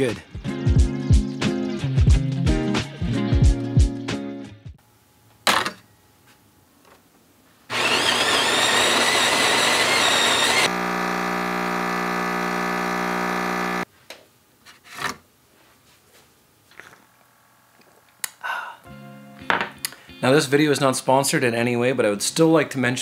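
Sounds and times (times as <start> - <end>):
coffee grinder grinding beans: 7.7 - 13.8
espresso pump humming: 7.7 - 13.8.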